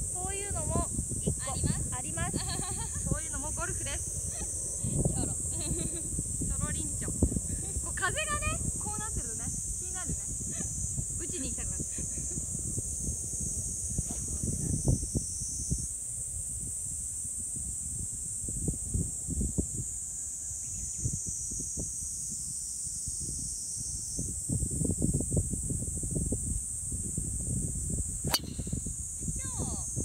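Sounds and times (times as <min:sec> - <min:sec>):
cicadas buzzing: 0:00.0 - 0:30.0
wind on microphone: 0:00.0 - 0:30.0.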